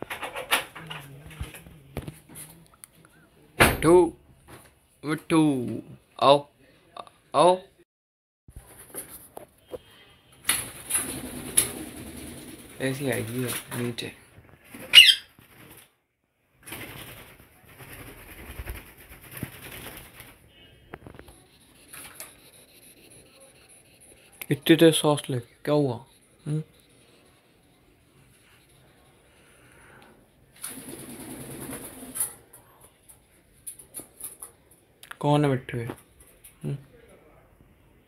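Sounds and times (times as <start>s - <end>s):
wings fluttering: 10.5s - 16.0s, 16.6s - 22.4s, 30.5s - 32.4s
parakeet squawk: 14.9s - 15.3s.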